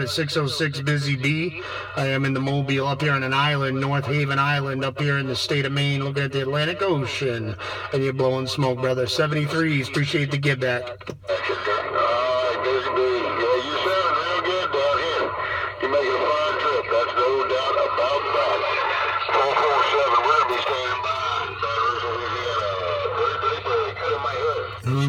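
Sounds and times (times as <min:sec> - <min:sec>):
man's voice over radio speaker: 0:00.0 - 0:25.0
radio static: 0:00.0 - 0:25.0.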